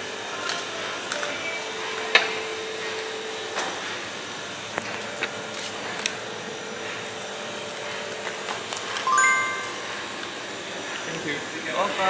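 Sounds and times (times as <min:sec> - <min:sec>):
room hum: 0:08.0 - 0:10.5
bright chime: 0:09.1 - 0:10.0.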